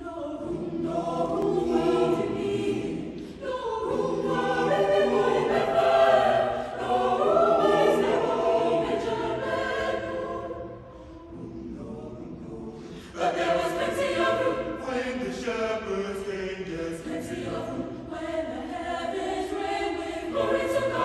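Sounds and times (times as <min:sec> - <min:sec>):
choir singing in parts: 0:00.0 - 0:21.0.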